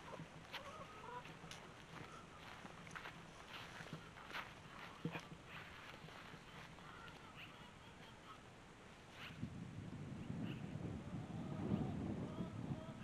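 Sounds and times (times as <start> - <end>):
footsteps on dry straw: 0.0 - 7.3
faint bird calls: 0.0 - 8.5, 9.1 - 9.5, 10.2 - 10.8.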